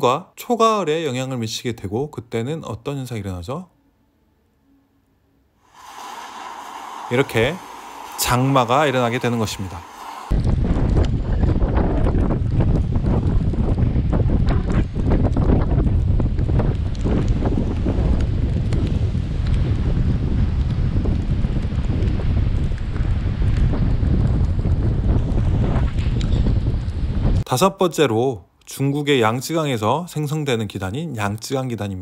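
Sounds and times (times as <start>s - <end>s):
sea surf on rocky shore: 5.6s - 10.4s
wind buffeting microphone: 5.7s - 27.5s.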